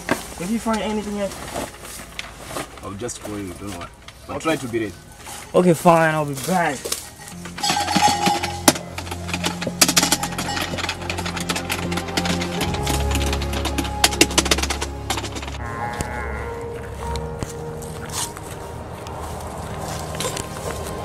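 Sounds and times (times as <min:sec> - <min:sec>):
sustained low notes: 0:08.5 - 0:21.0.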